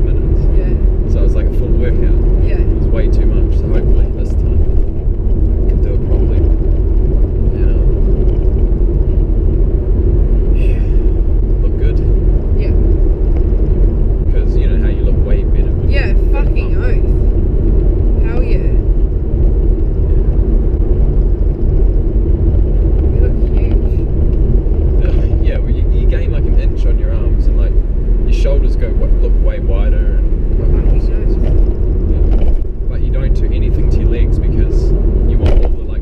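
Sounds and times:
low road rumble: 0:00.0 - 0:36.0
faint unclear voices: 0:25.0 - 0:27.7.

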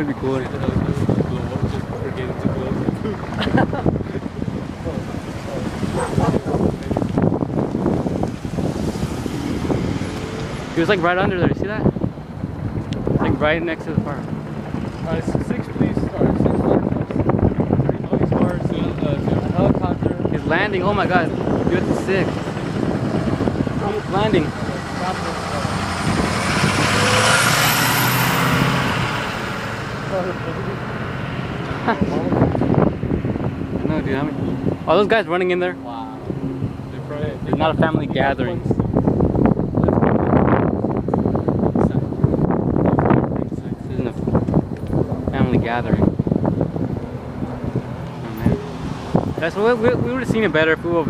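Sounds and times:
cars driving past: 0:00.0 - 0:51.0
voices talking: 0:00.0 - 0:51.0.

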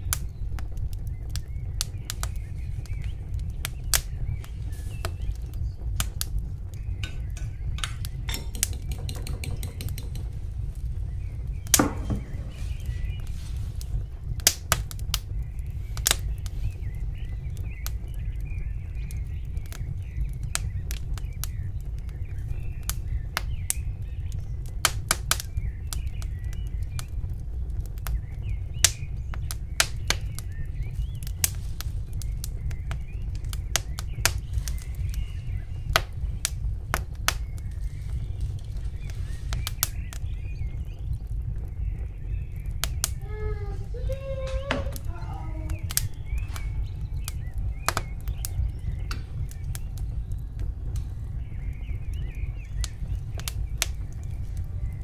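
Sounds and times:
sharp clicks and crackles: 0:00.0 - 0:55.0
low rumble: 0:10.0 - 0:24.9, 0:26.6 - 0:55.0.

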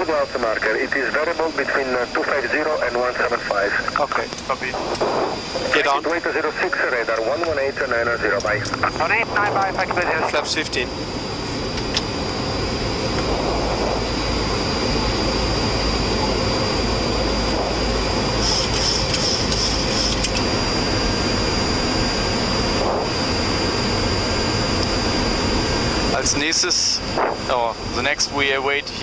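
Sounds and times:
jet engines running: 0:00.0 - 0:29.0
air rushing past aircraft: 0:09.2 - 0:26.1.

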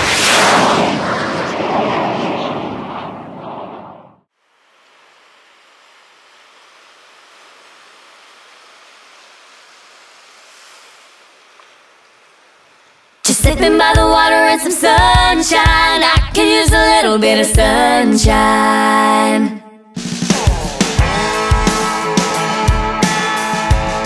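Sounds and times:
loud rush of noise: 0:00.0 - 0:04.2
ocean surf washing: 0:04.6 - 0:13.3.

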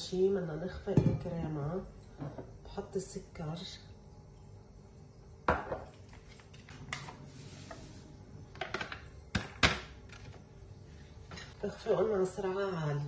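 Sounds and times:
kitchen clicks and knocks: 0:08.5 - 0:10.3.

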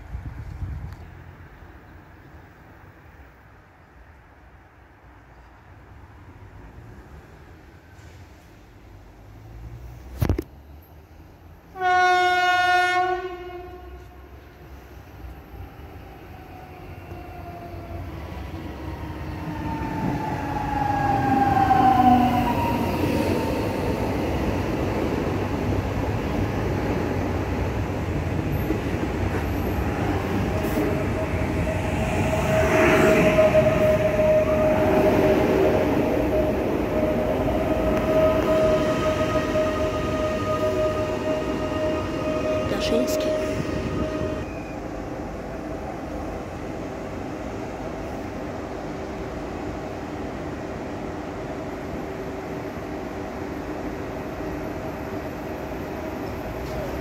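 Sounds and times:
train rolling rail noise: 0:00.0 - 0:57.0
train whine: 0:11.2 - 0:57.0
train horn blast: 0:11.7 - 0:14.6, 0:38.0 - 0:44.5.

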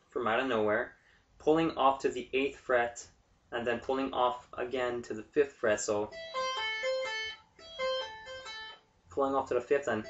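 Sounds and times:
electric guitar tapped arpeggio: 0:06.1 - 0:08.8.

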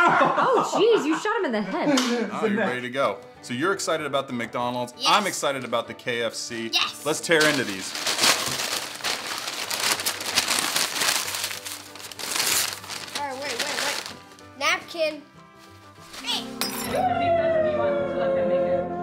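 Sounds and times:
music: 0:00.0 - 0:19.0
paper bags crinkling and tearing: 0:07.0 - 0:14.6.

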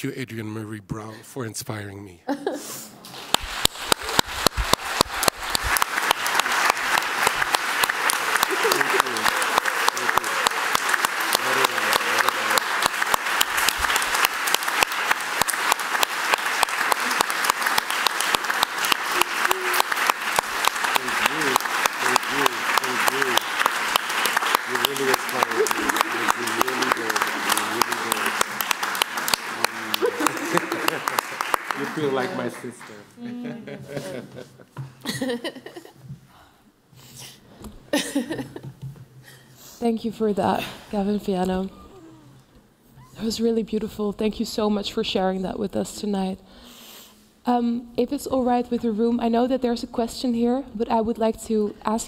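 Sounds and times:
audience applauding: 0:03.0 - 0:33.1
voices over applause: 0:03.4 - 0:33.1.

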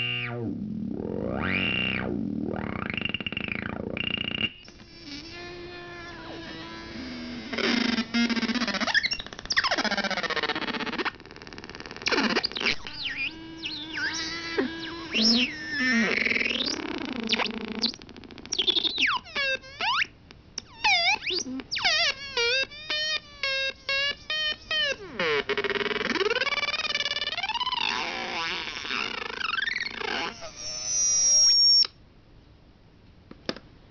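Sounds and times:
buzzy synthesizer tone: 0:00.0 - 0:10.3, 0:12.0 - 0:20.0.

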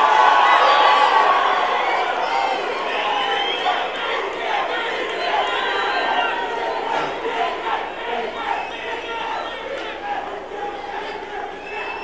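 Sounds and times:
audience cheering and shouting: 0:00.0 - 0:12.0.

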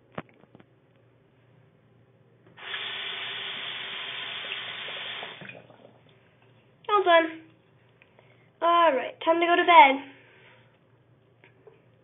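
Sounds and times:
water running: 0:02.5 - 0:07.6.

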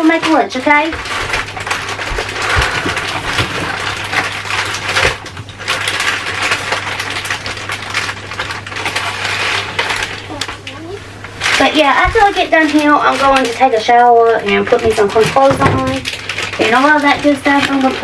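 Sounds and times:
plastic packaging crinkling: 0:00.0 - 0:18.0
steady low hum: 0:00.6 - 0:18.0.

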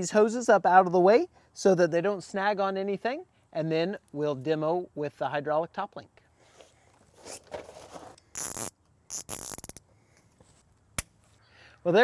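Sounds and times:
zip ties rasping tight: 0:08.2 - 0:09.9.

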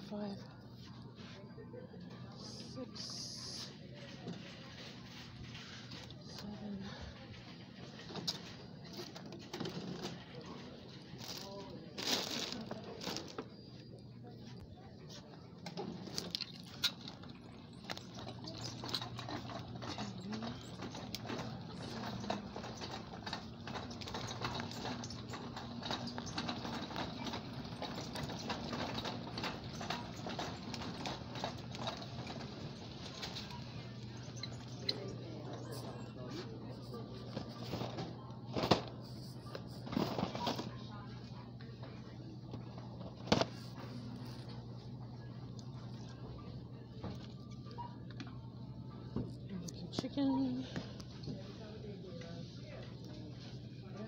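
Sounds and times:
shopping cart rattling: 0:04.0 - 0:13.4, 0:15.7 - 0:41.6.

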